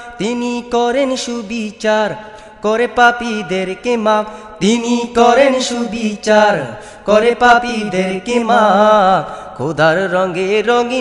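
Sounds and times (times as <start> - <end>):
man singing wordless chant: 0.0 - 11.0.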